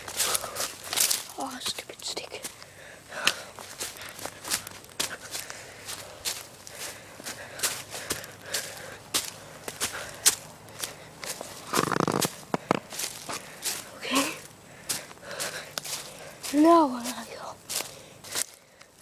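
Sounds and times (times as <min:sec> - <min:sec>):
footsteps crunching on leaves and twigs: 0:00.0 - 0:19.0.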